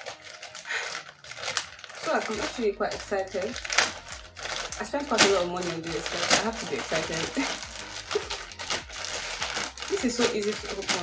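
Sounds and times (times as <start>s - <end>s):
plastic parcel crinkling: 0.0s - 11.0s.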